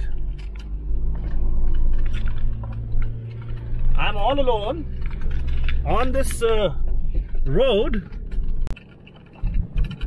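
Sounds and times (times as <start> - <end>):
vehicle engine and tyres rumbling: 0.0 - 10.0
vehicle rattles and knocks: 0.0 - 10.0.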